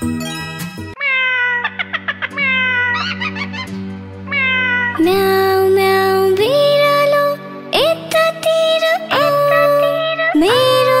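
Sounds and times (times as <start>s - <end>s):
background music: 0.0s - 1.0s, 1.7s - 11.0s
cat meowing: 1.0s - 5.0s.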